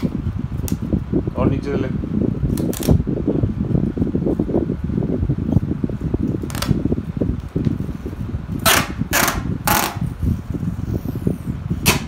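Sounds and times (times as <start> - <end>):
packing tape pulled off roll: 2.5 - 3.0, 6.2 - 6.8, 8.6 - 10.1, 11.8 - 12.0.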